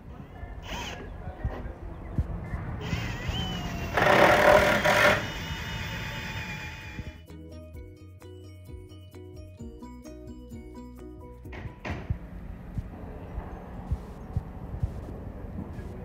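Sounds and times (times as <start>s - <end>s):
cordless drill driving screw: 0.6s - 1.0s, 2.8s - 7.2s
rhythmic background music: 7.2s - 16.0s.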